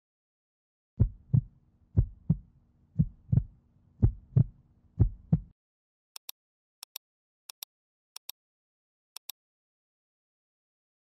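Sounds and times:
heartbeat thumps: 1.0 - 5.5.

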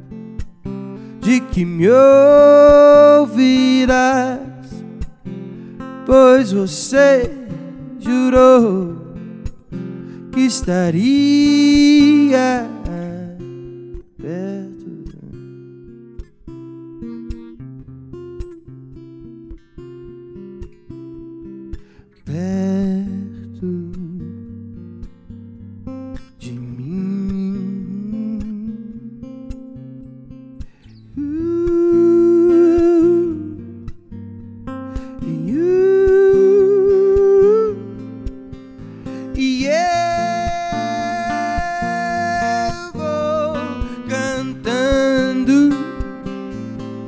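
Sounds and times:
acoustic guitar picking: 0.0 - 47.0.

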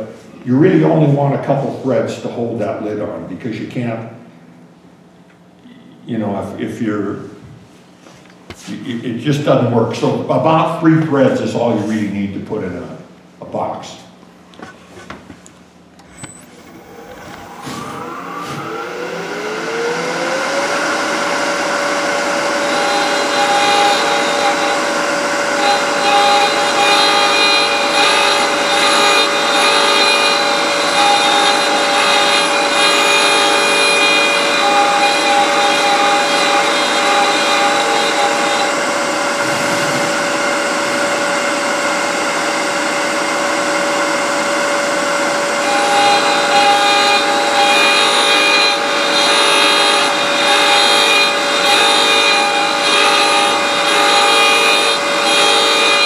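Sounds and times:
cutter cutting threads: 16.0 - 42.4, 45.6 - 56.0
router motor whining: 16.0 - 56.0.

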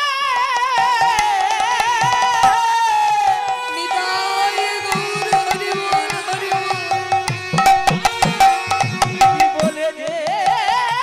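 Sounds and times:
sustained melodic tones: 3.3 - 10.1
hand drum with bending bass: 7.2 - 9.8.

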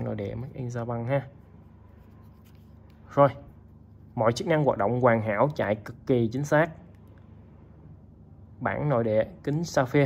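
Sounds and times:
person speaking: 0.0 - 7.0
fingers rustling a watch strap: 1.7 - 4.1.

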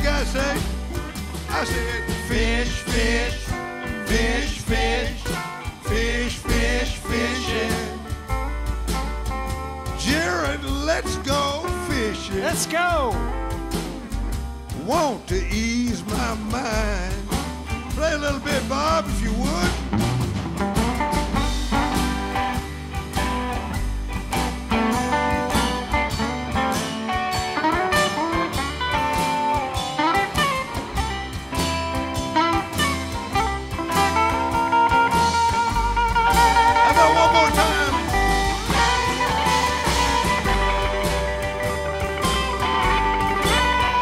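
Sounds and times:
blues electric guitar solo: 0.0 - 5.9, 7.0 - 15.0, 19.4 - 44.0
bass and rhythm backing: 0.0 - 44.0.

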